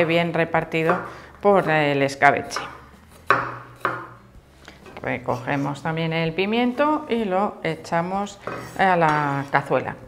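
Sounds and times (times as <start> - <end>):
knife chopping on wooden board: 0.8 - 1.8, 2.4 - 4.2, 8.4 - 9.2.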